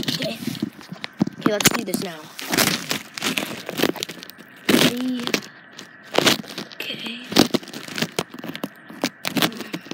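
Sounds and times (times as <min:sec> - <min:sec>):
phone rustling against microphone: 0:00.0 - 0:09.9.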